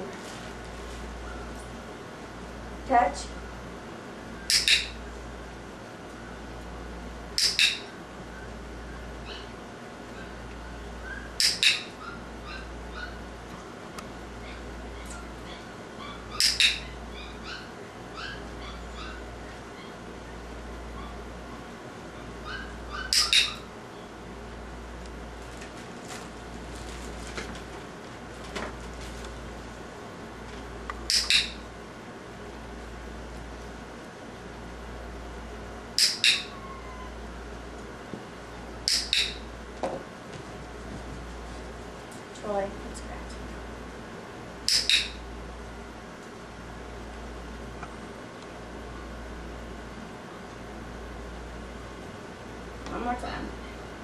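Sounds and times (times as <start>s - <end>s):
clicker snapping: 4.5s - 4.8s, 36.0s - 36.4s
dog training clicker clicking: 4.5s - 4.9s, 7.4s - 7.8s, 11.4s - 11.8s, 16.4s - 16.8s, 23.1s - 23.5s, 31.1s - 31.6s, 36.0s - 36.5s, 38.8s - 39.4s, 44.7s - 45.2s
faint high squeaks: 36.3s - 37.2s.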